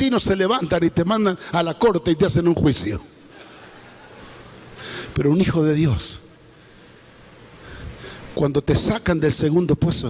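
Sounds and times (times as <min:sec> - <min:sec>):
man speaking: 0:00.0 - 0:03.2, 0:05.1 - 0:06.4, 0:08.3 - 0:10.0
microphone hiss: 0:00.0 - 0:10.0
sharp inhaled breath: 0:04.8 - 0:05.2, 0:07.6 - 0:08.4.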